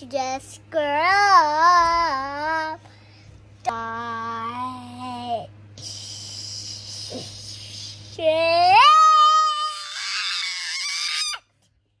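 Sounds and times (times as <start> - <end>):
child shrieking with laughter: 9.5 - 11.4.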